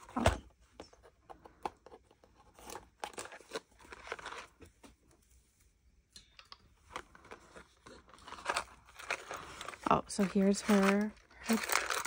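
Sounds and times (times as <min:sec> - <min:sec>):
cardboard box crackling and rustling: 0:07.8 - 0:12.0.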